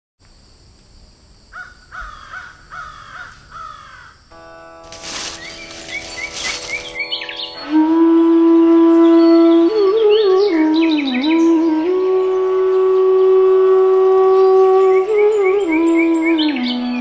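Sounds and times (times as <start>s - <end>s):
harsh crow-like bird calls: 1.6s - 4.2s
music of held notes: 4.3s - 17.0s
sustained woodwind-like note: 4.9s - 17.0s.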